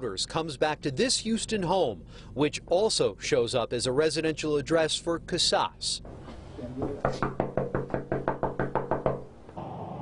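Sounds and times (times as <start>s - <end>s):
rapid knocking on wooden door: 6.8s - 9.3s.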